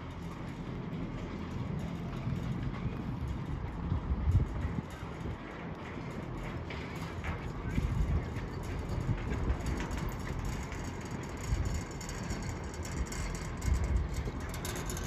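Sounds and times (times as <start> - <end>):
chairlift haul rope running: 0.0 - 15.0
wind gusting on microphone: 0.6 - 15.0.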